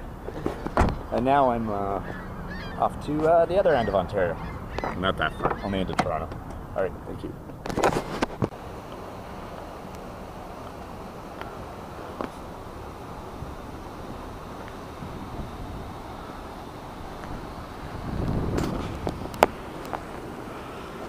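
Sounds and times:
wind on microphone: 14.9 - 16.2, 17.0 - 19.6.

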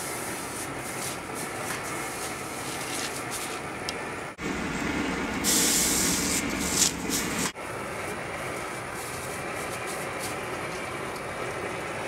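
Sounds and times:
gas torch hissing: 5.3 - 7.6
bright loud hiss: 5.4 - 7.6.

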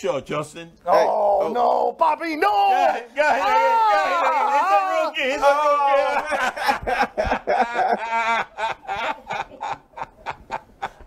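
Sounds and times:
men laughing hard: 3.8 - 11.0.

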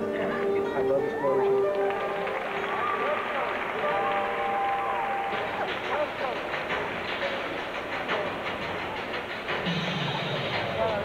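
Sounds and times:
crowd murmur: 0.0 - 11.0
music over loudspeakers: 0.0 - 11.0.

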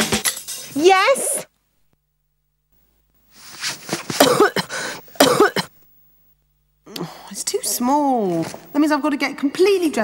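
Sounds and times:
woman coughing: 4.2 - 5.8.

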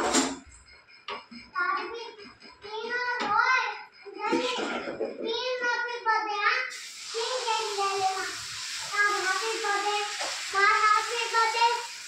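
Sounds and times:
child singing: 1.6 - 11.9.

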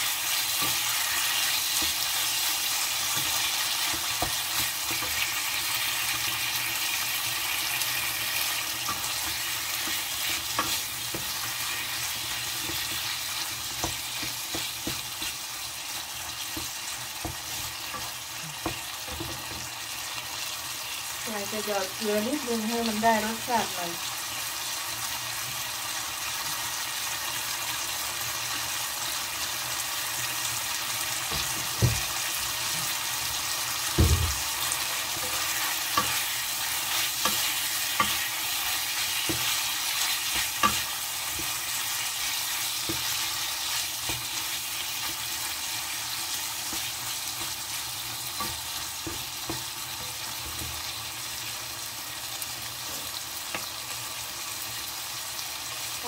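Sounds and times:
meat sizzling in a pan: 0.0 - 56.0.

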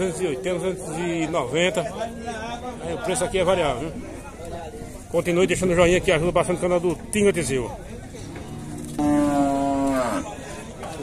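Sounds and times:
cow mooing: 8.6 - 10.4.

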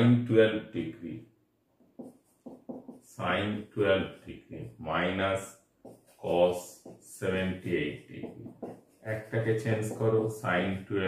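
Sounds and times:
marker pen writing on whiteboard: 1.7 - 11.0.

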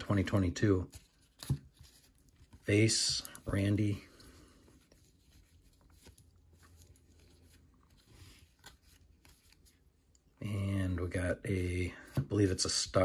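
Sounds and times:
trading cards rustling and clicking: 0.0 - 10.3.

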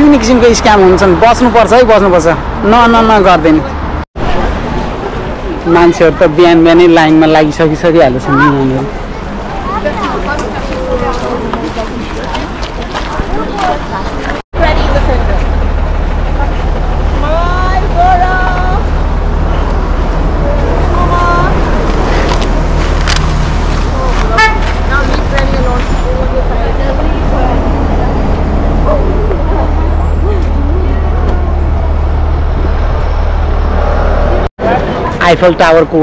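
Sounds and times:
people's voices: 0.0 - 36.0
road traffic rumble: 0.0 - 36.0.

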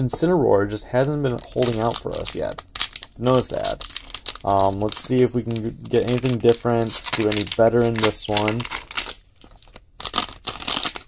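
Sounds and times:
foil wrapper crinkling and tearing: 1.3 - 11.0.

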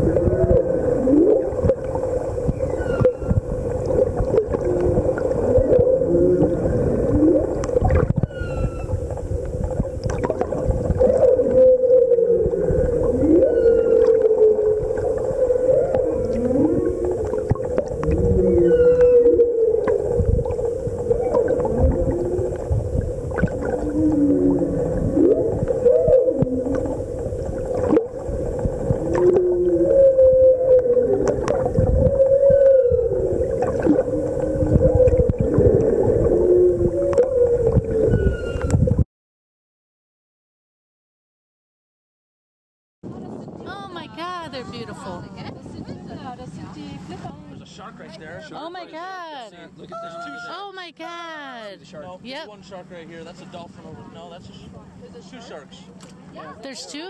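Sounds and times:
humpback whale calls underwater: 0.0 - 39.0, 49.8 - 51.4
steady underwater hum: 0.0 - 39.0, 43.1 - 57.0.

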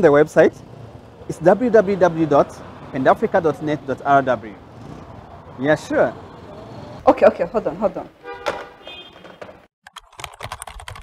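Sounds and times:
laptop keyboard typing: 9.9 - 11.0.

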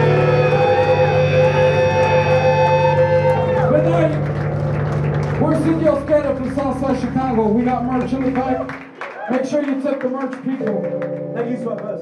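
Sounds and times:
distorted guitar chord ringing: 0.0 - 7.4.

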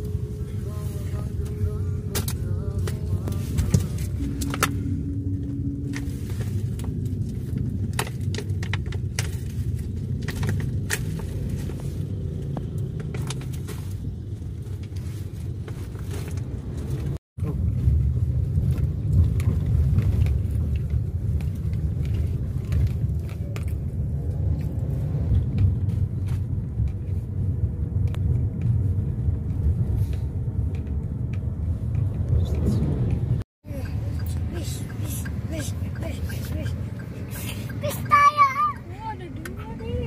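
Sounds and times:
bus diesel engine passing: 0.0 - 7.9, 31.6 - 40.0
road traffic rumble: 0.0 - 40.0.

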